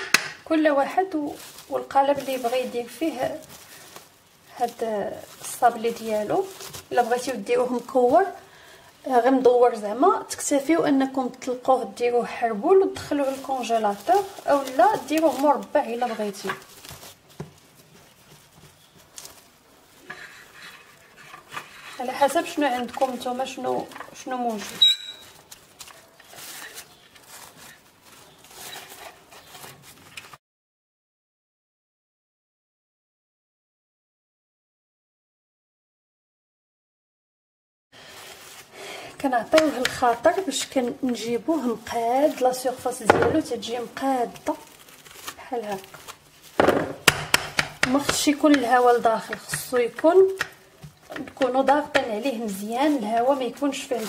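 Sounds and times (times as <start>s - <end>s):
cling film rustling and crinkling: 0.0s - 30.4s, 38.0s - 54.0s
spatula scraping dough: 13.0s - 23.6s.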